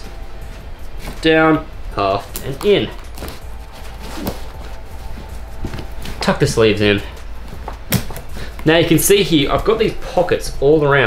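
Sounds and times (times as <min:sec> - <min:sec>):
clothing rustling: 0:00.0 - 0:10.1
steady low hum: 0:00.0 - 0:11.0.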